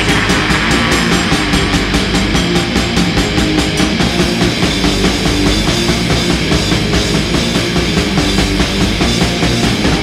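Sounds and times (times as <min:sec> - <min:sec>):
cymbals struck rapidly: 0:00.0 - 0:10.0
distorted electric guitars: 0:00.0 - 0:10.0
fast drumming: 0:00.0 - 0:10.0.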